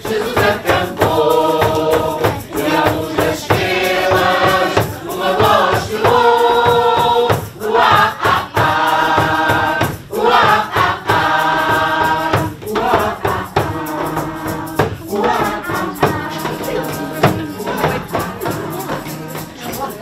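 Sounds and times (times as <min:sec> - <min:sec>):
hand percussion beat: 0:00.0 - 0:20.0
mixed choir singing: 0:00.0 - 0:20.0.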